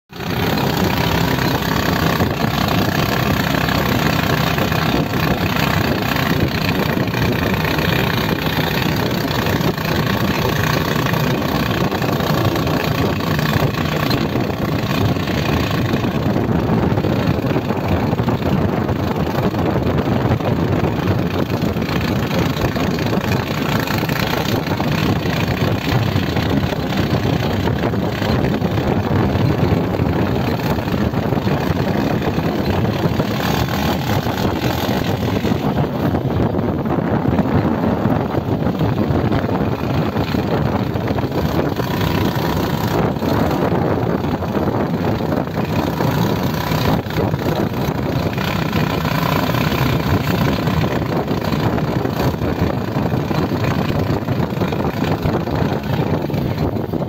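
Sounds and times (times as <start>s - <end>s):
motorcycle engine running: 0.0s - 57.0s
road rush: 0.0s - 57.0s
wind on microphone: 0.1s - 57.0s.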